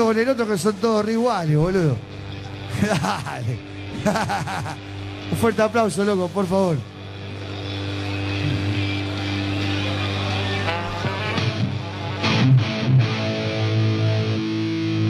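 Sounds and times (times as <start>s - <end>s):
crowd noise: 0.0s - 14.2s
electric guitar and bass notes: 0.0s - 15.0s.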